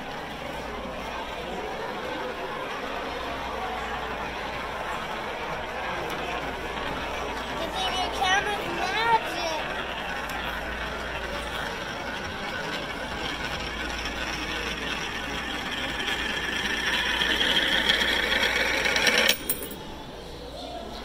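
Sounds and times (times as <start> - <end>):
coin rolling in plastic funnel: 9.6 - 19.8.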